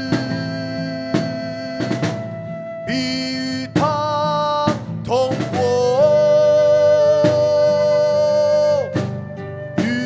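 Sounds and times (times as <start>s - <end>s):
instrumental accompaniment: 0.0s - 10.0s
person singing slow melody: 0.0s - 10.0s.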